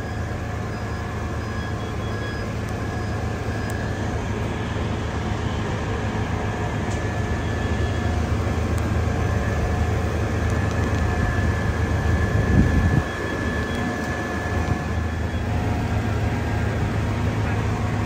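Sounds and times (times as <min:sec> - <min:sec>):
diesel engine running: 0:00.0 - 0:18.0
thin high whine: 0:00.0 - 0:18.0.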